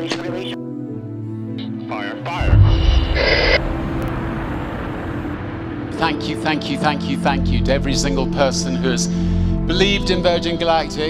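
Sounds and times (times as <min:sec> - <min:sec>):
rocket motor roaring: 0:02.4 - 0:05.9.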